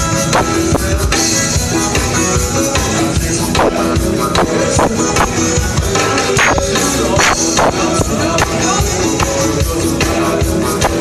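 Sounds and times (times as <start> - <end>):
live band playing dance music: 0.0 - 11.0.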